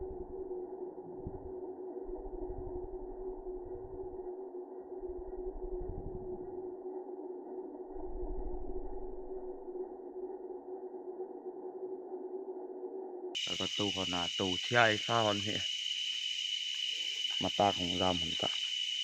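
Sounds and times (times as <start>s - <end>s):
dull low rumbles: 0.0s - 4.3s, 5.0s - 6.6s, 7.9s - 9.9s
slowed insect chorus drone: 0.0s - 19.0s.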